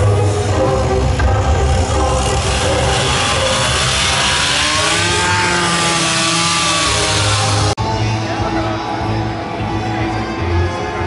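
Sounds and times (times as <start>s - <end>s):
chainsaw cutting wood: 0.2s - 7.8s.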